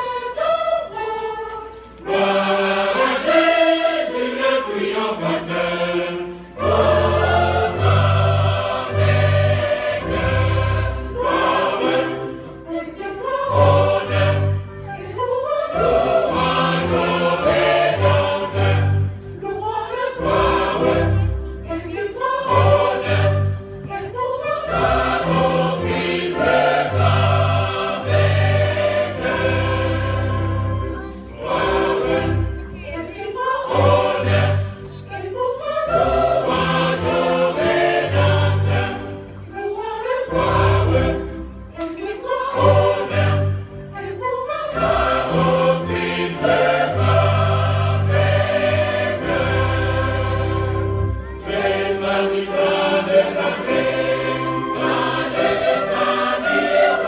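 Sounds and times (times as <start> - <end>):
choir singing a hymn: 0.0 - 57.0
keyboard: 0.0 - 57.0
violins: 0.0 - 57.0.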